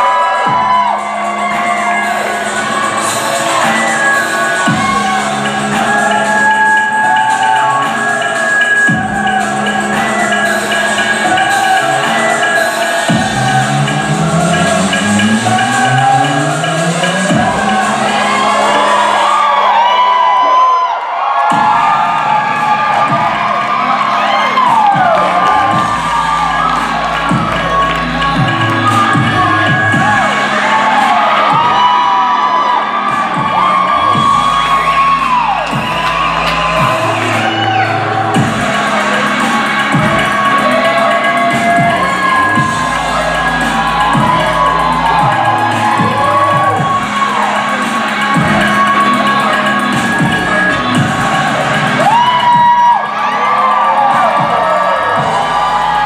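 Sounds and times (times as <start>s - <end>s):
live music with bass line: 0.0s - 20.0s, 21.4s - 56.0s
audience cheering and whooping: 0.0s - 56.0s.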